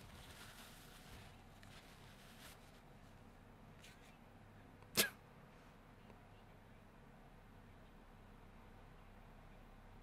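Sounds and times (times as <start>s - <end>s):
person sneezing: 4.9s - 5.2s.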